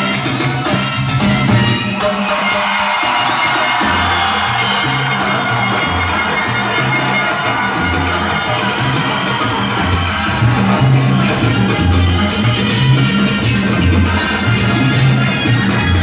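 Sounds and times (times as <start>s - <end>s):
salsa music with brass: 0.0s - 16.0s
audience cheering: 1.5s - 16.0s.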